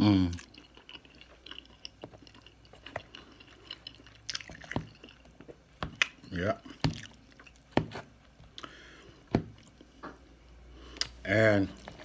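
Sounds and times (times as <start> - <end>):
chewing soft food: 0.0 - 8.8.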